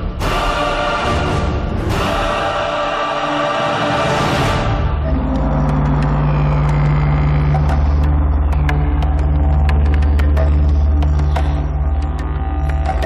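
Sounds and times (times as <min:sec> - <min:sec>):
low steady drone score: 0:00.0 - 0:13.0.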